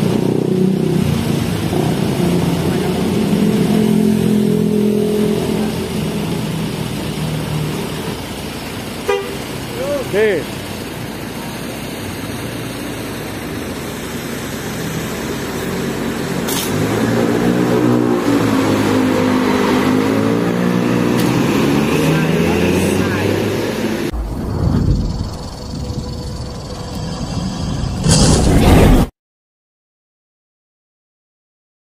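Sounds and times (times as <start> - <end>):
bus diesel engine accelerating: 0.0 - 24.2
loud rush of noise: 0.0 - 29.1.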